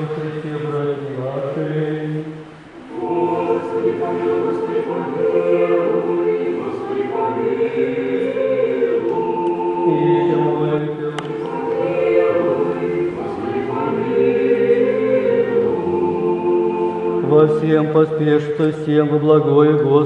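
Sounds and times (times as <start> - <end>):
men singing a chant: 3.0 - 20.0.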